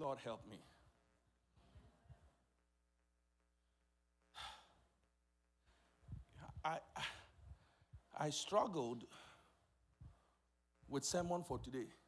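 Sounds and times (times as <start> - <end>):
man sighing: 6.9 - 7.4.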